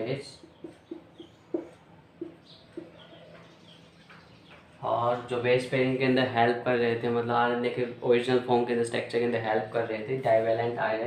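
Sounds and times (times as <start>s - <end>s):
man talking: 0.0s - 0.4s, 4.8s - 11.0s
marker squeaking on whiteboard: 0.4s - 4.8s.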